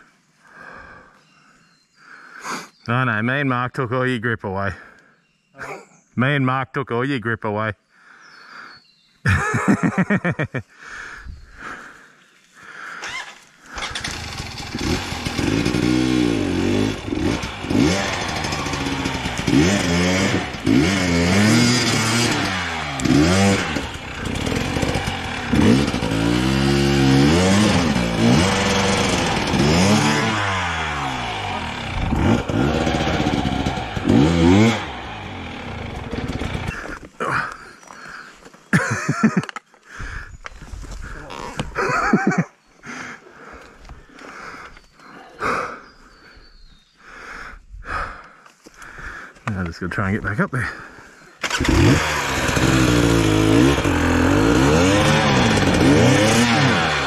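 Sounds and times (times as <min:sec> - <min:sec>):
dirt bike engine revving: 0:13.0 - 0:37.6, 0:41.0 - 0:42.4, 0:50.7 - 0:57.0.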